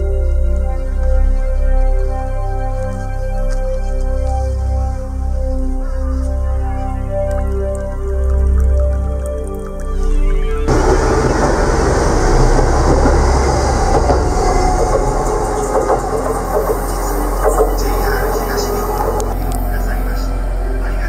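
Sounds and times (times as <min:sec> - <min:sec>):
soft background music: 0:00.0 - 0:21.0
clicking train wheels: 0:10.7 - 0:20.5
train passing close by: 0:10.7 - 0:21.0.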